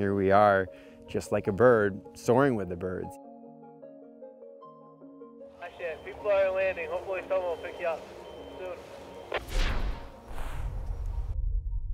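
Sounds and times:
deep boom with falling whoosh: 0:09.4 - 0:11.9.

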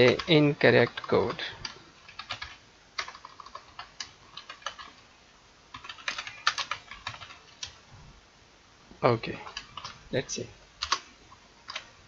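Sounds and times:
computer keyboard typing: 0:00.0 - 0:05.0, 0:05.7 - 0:07.8, 0:09.4 - 0:10.0, 0:10.8 - 0:12.0.

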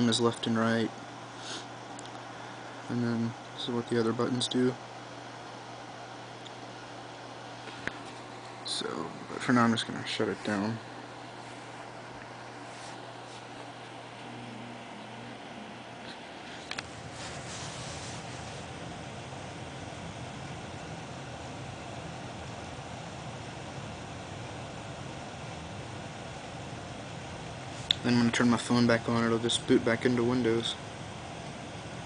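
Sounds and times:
low hum with hiss: 0:00.0 - 0:32.0.

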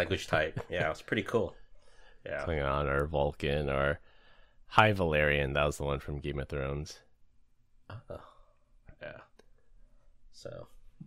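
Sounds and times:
man murmuring: 0:07.9 - 0:09.3.

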